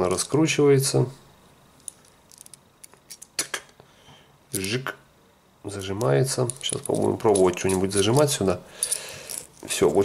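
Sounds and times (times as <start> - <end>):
light metallic clicks and scrapes: 5.8 - 10.0.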